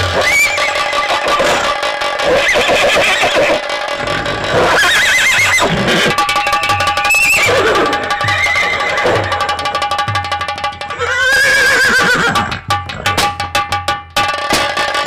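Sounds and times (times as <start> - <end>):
horse whinnies: 0.0 - 9.8, 10.8 - 13.2
music with low drum beat: 5.8 - 15.0.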